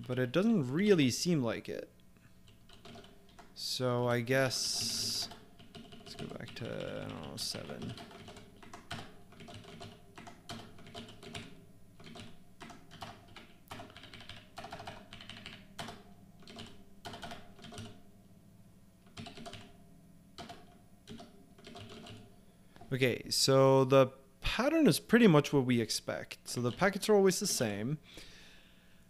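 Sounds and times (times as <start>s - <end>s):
keyboard typing clicks: 2.5s - 3.5s, 4.6s - 18.0s, 19.1s - 19.7s, 20.4s - 22.9s.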